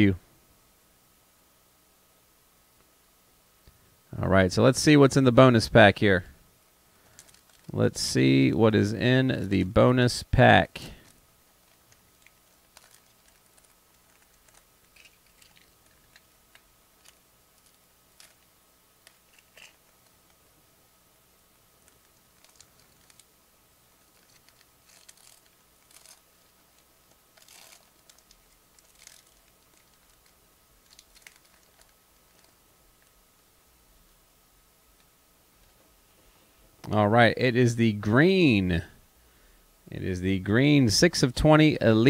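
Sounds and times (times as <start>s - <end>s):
faint steady hum: 0.0s - 42.0s
foil pack crinkling: 7.0s - 7.8s, 11.0s - 20.4s, 21.8s - 23.3s, 24.0s - 33.2s.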